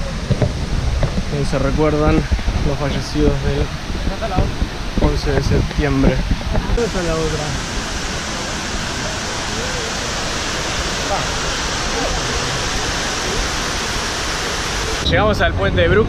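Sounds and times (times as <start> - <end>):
water cascading down walls: 0.0 - 16.0.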